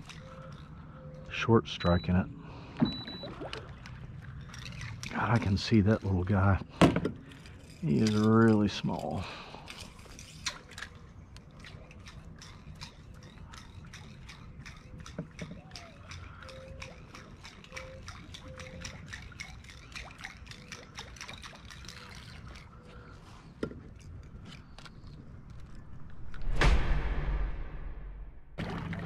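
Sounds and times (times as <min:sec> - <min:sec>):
water dripping and lapping: 0:00.0 - 0:26.2, 0:28.6 - 0:29.0.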